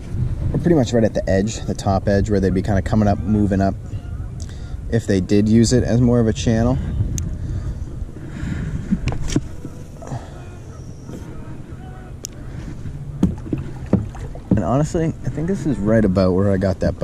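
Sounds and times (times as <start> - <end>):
wind and water rumble: 0.0 - 17.0.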